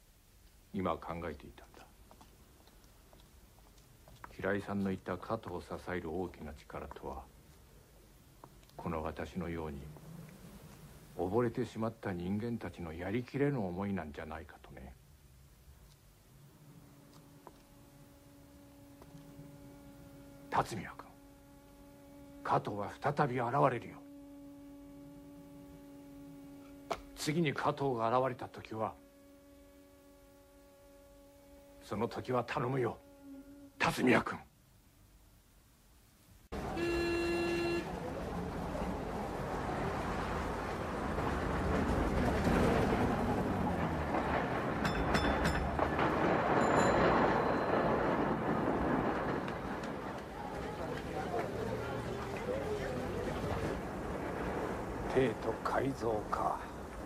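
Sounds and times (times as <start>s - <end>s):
faint steady drone tone: 0.0s - 57.0s
streetcar rumbling on rails: 36.5s - 57.0s
short ringing tone: 44.9s - 48.5s.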